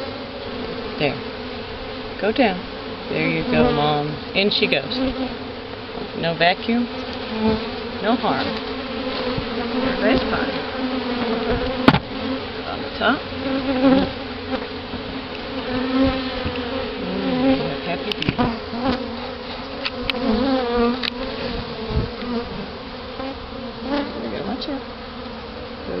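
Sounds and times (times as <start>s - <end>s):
honeybees buzzing: 0.0s - 26.0s
wooden hive lid knocks: 4.7s - 13.0s.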